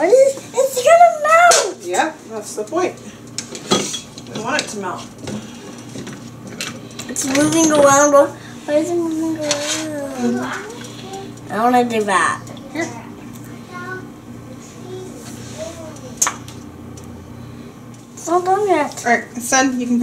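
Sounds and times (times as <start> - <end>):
voices talking: 7.0 - 16.8.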